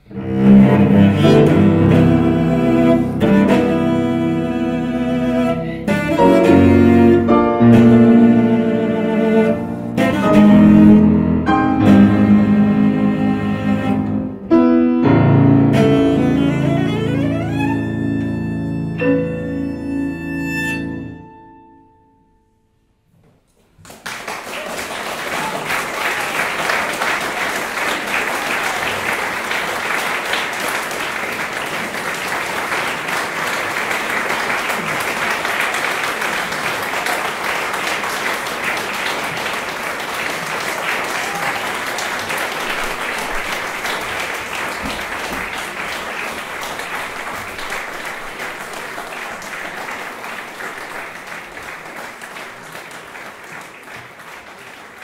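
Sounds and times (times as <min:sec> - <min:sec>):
audience applauding: 0:15.8 - 0:19.0, 0:23.8 - 0:55.0.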